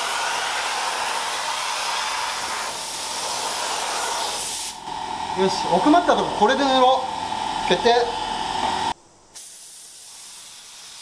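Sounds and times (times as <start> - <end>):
spray gun hissing: 0.0 - 4.8, 9.4 - 11.0
steady hum: 0.0 - 9.4.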